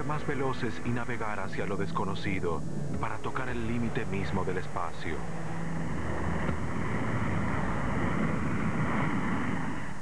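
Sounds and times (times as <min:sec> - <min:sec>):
aircraft engine and airflow rumble: 0:00.0 - 0:10.0.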